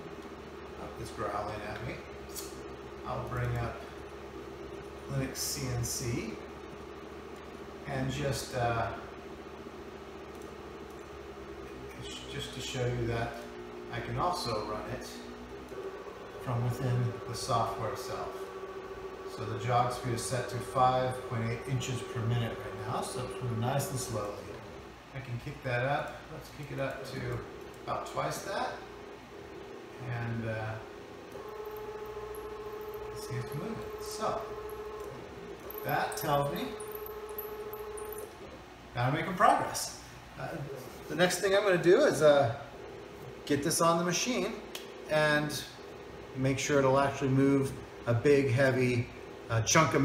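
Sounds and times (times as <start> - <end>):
low electrical hum: 0.0 - 50.0
servo motor whine: 10.3 - 25.1, 26.7 - 38.6.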